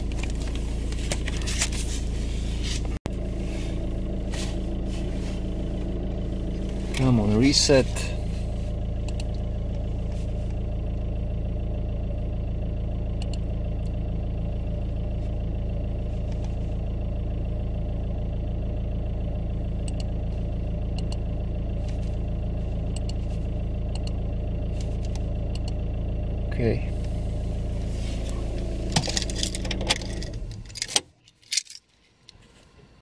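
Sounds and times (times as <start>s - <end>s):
diesel engine idling: 0.0s - 30.8s.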